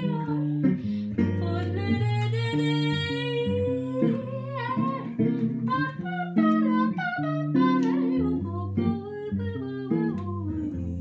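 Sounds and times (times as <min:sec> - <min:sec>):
jazz guitar chords: 0:00.0 - 0:11.0
woman singing: 0:00.0 - 0:11.0.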